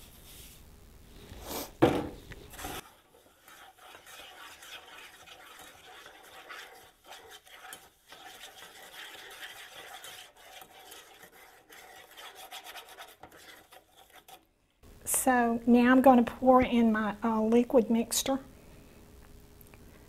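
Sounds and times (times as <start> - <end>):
spoon scraping metal saucepan: 2.5 - 14.4.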